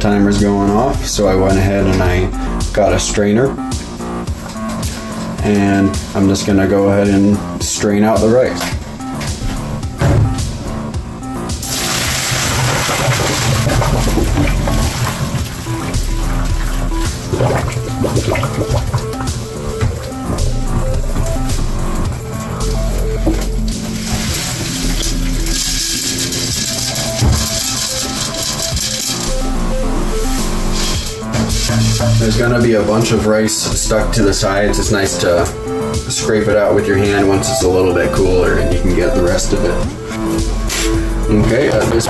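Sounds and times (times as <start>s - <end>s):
background music: 0.0s - 42.0s
water rushing down drain: 11.6s - 21.5s, 22.8s - 33.1s
water and rice pouring into strainer: 11.7s - 15.6s.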